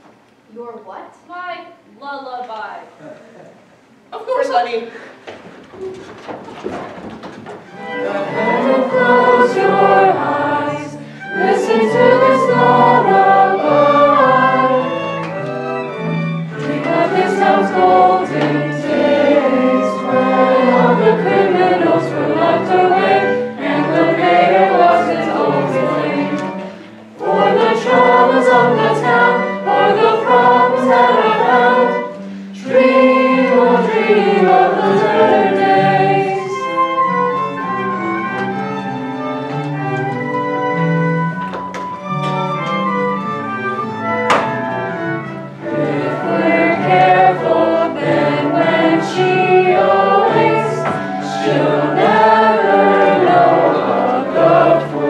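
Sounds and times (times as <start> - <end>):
musical accompaniment: 5.8 - 55.0
group singing a lullaby: 7.7 - 38.4, 44.0 - 55.0.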